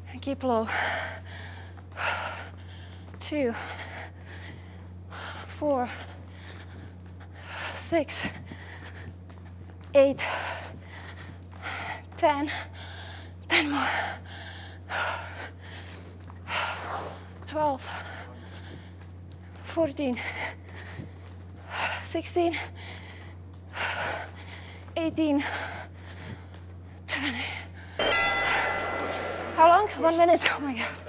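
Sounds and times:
woman breathing hard: 0:00.6 - 0:09.6, 0:10.2 - 0:27.0
bell-like timer chime: 0:28.0 - 0:31.0.

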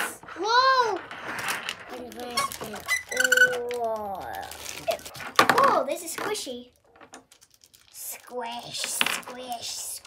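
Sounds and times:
child exclaiming: 0:00.4 - 0:01.0.

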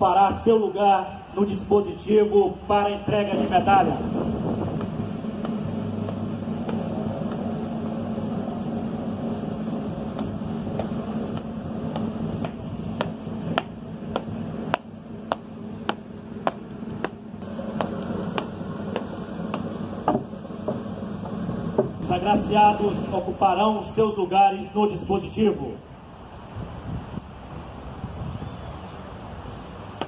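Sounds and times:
outdoor hum: 0:00.0 - 0:30.0
wind noise: 0:02.8 - 0:14.8, 0:26.1 - 0:30.0.

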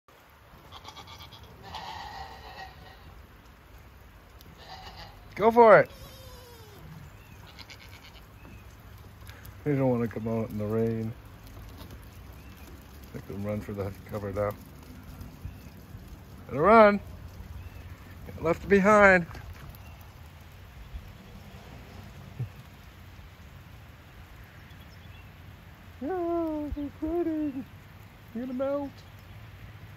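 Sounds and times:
steady rain falling: 0:00.1 - 0:29.9
goat bleating: 0:00.6 - 0:03.1, 0:04.5 - 0:08.5.

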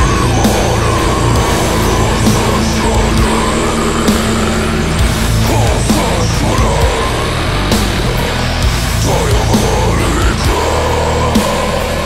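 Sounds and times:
steady held note: 0:00.0 - 0:08.6
distorted guitars: 0:00.0 - 0:12.0
fast driving drums: 0:00.0 - 0:12.0.

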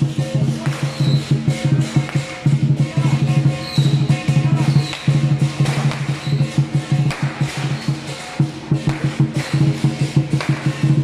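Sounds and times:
cymbals ringing: 0:00.0 - 0:11.0
large drum beating fast rhythm: 0:00.0 - 0:11.0.

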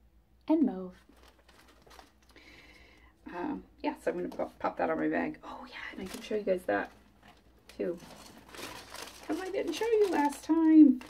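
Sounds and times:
bag rustling and crinkling: 0:00.9 - 0:03.0, 0:05.8 - 0:11.0.

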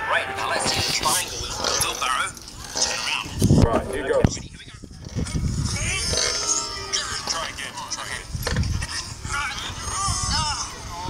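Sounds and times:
background music: 0:00.0 - 0:03.0, 0:05.9 - 0:07.9
voices talking: 0:00.0 - 0:11.0.

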